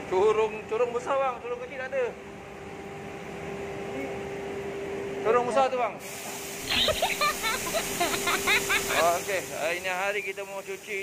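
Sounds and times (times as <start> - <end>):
faint high hiss: 6.1 - 11.0
steady hum: 6.3 - 11.0
people talking: 8.9 - 11.0.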